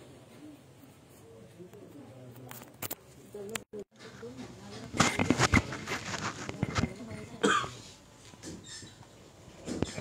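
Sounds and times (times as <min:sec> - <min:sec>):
low room noise: 0:00.0 - 0:10.0
person coughing: 0:07.4 - 0:07.8.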